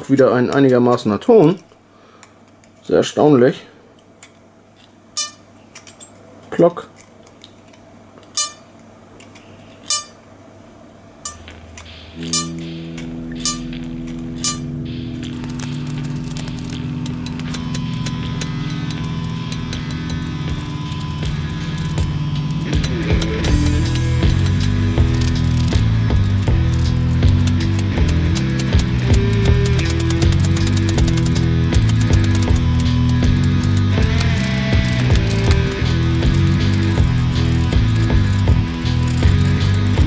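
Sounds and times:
harmonica reeds plinking: 8.4 - 8.7, 9.8 - 10.2, 11.3 - 40.0
background music with beat: 11.3 - 40.0.

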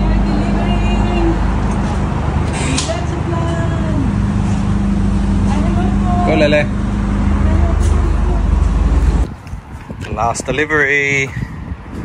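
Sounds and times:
constant hum: 0.0 - 12.0
road traffic rumble: 0.0 - 12.0.

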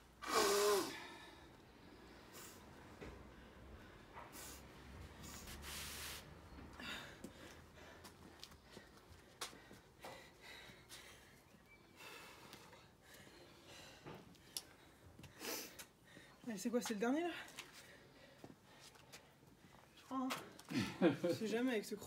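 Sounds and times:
woman breathing heavily: 0.1 - 16.4, 17.2 - 20.0.

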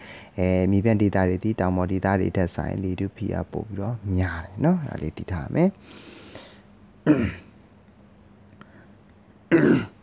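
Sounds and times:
person clearing throat: 7.0 - 7.6, 9.5 - 10.0.

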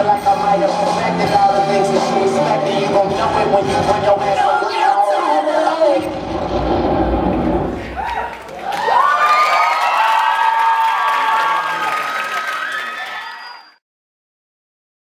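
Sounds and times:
audience cheering: 7.4 - 13.8
high-pitched screams: 7.7 - 13.8.

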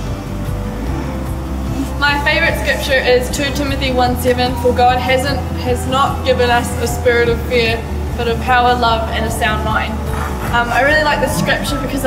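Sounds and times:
low instrumental background music: 0.0 - 12.0.

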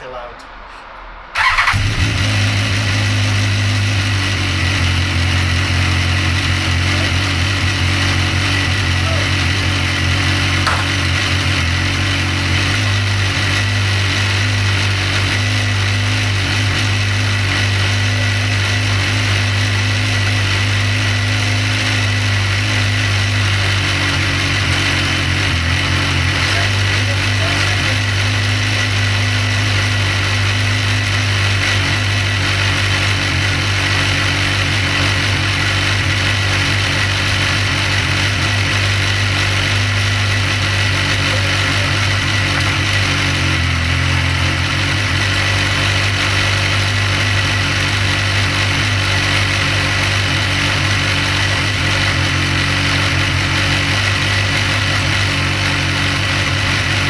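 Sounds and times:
motorcycle engine idling: 1.4 - 57.0.

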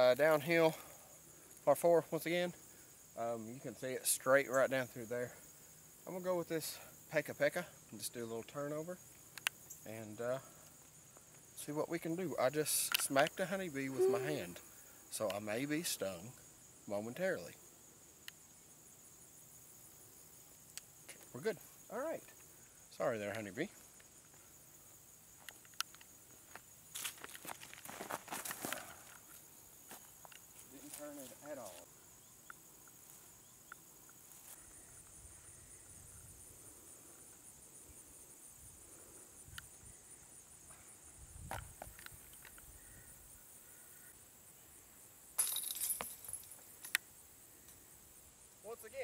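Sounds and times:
insects chirring: 0.0 - 49.0
footsteps on grass: 29.8 - 31.9.

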